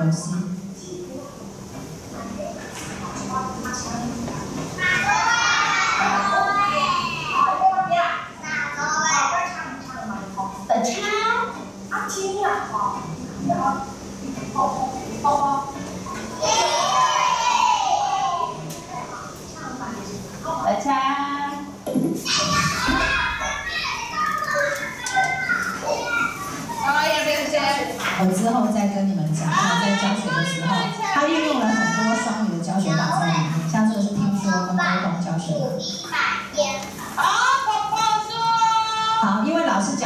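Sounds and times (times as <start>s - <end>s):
children talking and playing: 0.0s - 40.0s.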